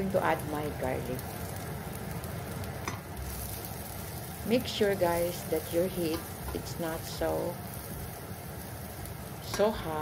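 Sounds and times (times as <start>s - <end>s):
onion sizzling in a frying pan: 0.0s - 10.0s.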